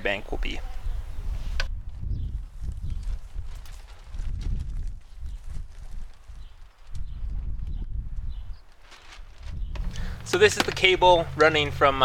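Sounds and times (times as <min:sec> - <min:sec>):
footsteps on wood-chip mulch: 0:08.6 - 0:11.6.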